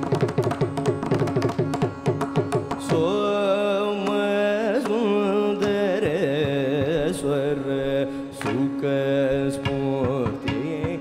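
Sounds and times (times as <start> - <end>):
violin accompaniment: 0.0 - 11.0
man singing ornamented melody: 2.8 - 11.0.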